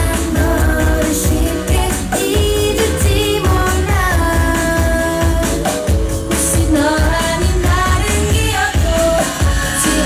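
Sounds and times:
female vocals singing: 0.0s - 5.7s, 6.3s - 10.0s
pop backing track with pulsing bass: 0.0s - 10.0s.

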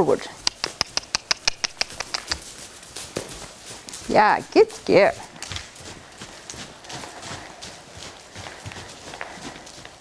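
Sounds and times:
sharp mouth clicks: 0.4s - 2.4s.

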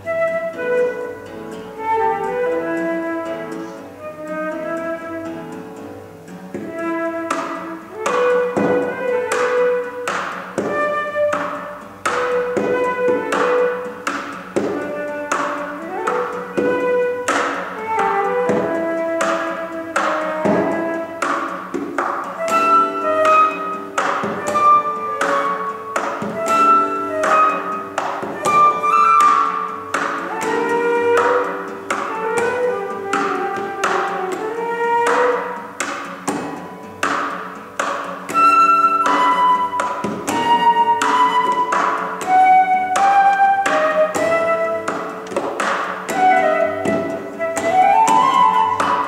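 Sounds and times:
acoustic guitar chords: 0.0s - 49.0s
flute melody: 0.0s - 49.0s.

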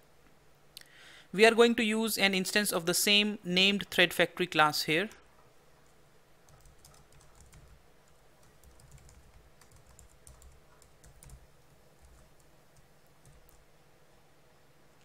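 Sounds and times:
typing on a keyboard: 6.4s - 13.7s.

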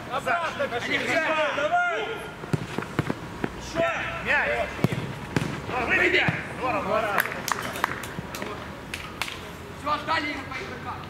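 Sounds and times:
man shouting: 1.1s - 2.3s
sharp knocks of football play: 2.5s - 3.6s, 4.7s - 6.5s.

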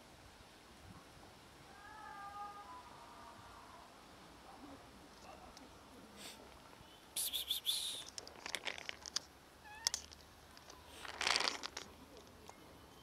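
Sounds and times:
cat meowing: 1.7s - 3.0s, 9.6s - 10.0s.

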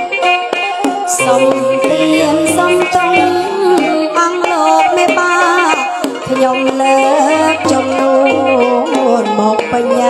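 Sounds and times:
melody with bending pitches: 0.0s - 10.0s
percussion strokes: 0.0s - 10.0s.

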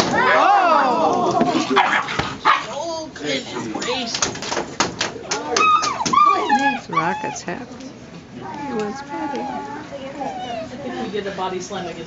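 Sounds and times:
puppies calling: 5.3s - 11.6s.

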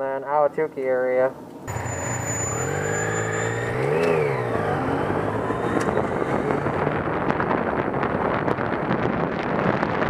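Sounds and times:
motorcycle engine accelerating: 1.7s - 10.0s.

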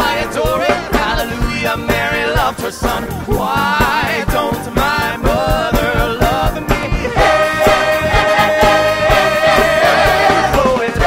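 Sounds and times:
rock band with drum beat: 0.0s - 11.0s
voices singing sustained notes: 0.0s - 11.0s.

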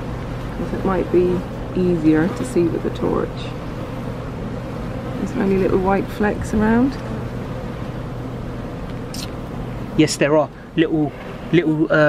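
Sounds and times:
honeybees humming: 0.0s - 12.0s.

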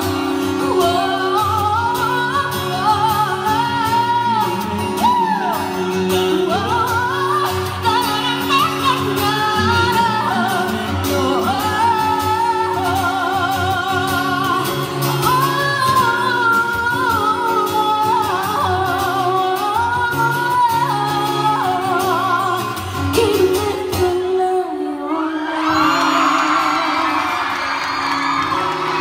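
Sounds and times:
woman singing into microphone: 0.0s - 28.0s.

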